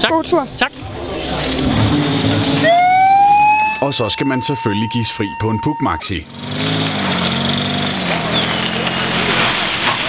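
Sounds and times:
moped engine: 0.9 - 3.5, 6.1 - 10.0
megaphone siren: 1.3 - 6.2.

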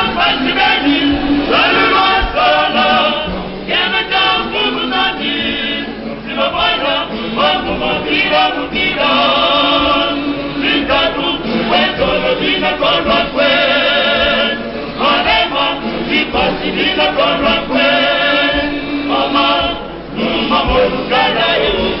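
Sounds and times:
male choir singing: 0.0 - 22.0.

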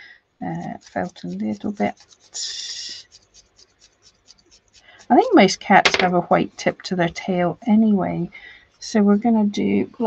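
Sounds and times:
felting needle pricking wool: 0.4 - 9.5.

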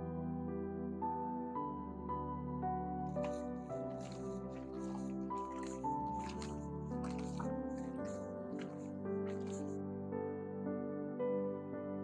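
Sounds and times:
calm background music: 0.0 - 12.0.

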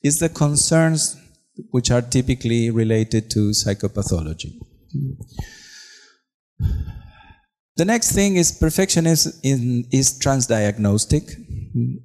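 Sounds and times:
man breathing out: 5.3 - 7.4.

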